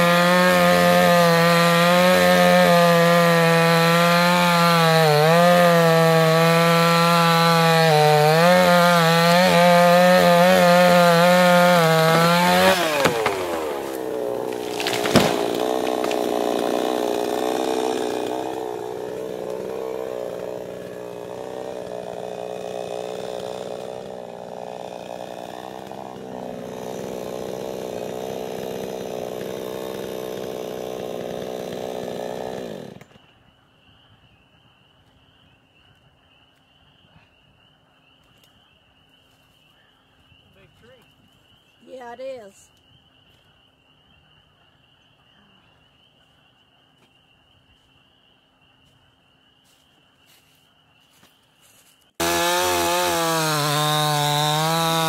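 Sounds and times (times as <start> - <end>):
chainsaw idling: 0.0 - 33.0, 52.2 - 55.0
chainsaw cutting tree trunk: 0.0 - 33.2, 52.2 - 55.0.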